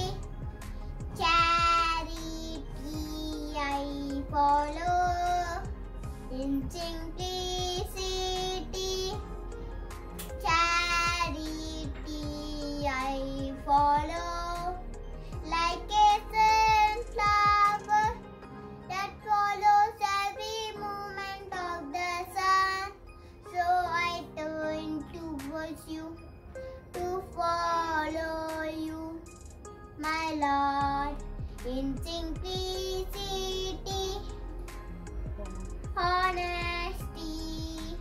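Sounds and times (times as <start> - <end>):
young boy singing: 0.0 - 0.2, 1.1 - 9.4, 10.4 - 18.2, 18.9 - 26.2, 26.9 - 29.4, 30.0 - 34.4, 35.3 - 38.0.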